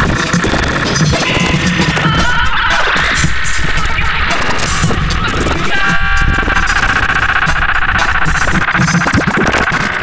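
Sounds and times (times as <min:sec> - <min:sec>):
harsh electronic noise music: 0:00.0 - 0:10.0
high many-toned buzzing: 0:00.0 - 0:10.0
pulsing low end: 0:00.0 - 0:10.0.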